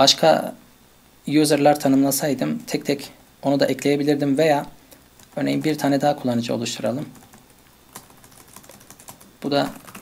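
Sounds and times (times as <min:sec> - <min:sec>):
keystrokes on a computer keyboard: 0:07.1 - 0:10.0.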